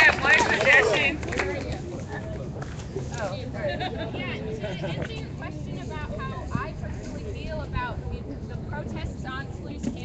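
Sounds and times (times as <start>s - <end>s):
crowd talking indistinctly: 0.0s - 10.0s.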